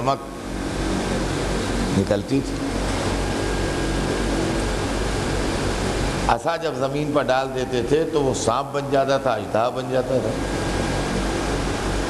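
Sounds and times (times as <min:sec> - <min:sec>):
loud microphone hiss: 0:00.0 - 0:12.0
low hum: 0:00.0 - 0:12.0.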